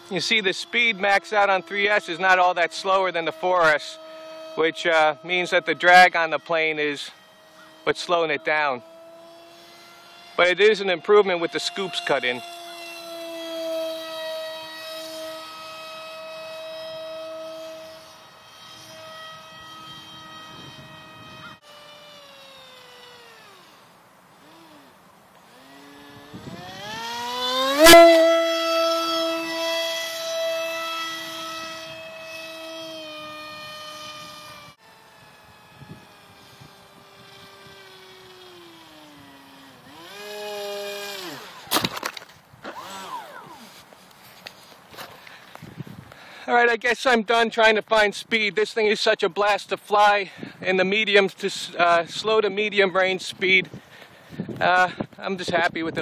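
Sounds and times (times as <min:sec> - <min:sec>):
electric motor propeller whine: 0:00.0 - 0:46.5.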